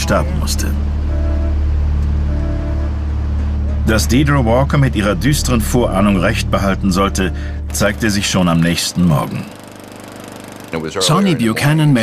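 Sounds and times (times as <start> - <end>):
low droning score: 0.0 - 12.0.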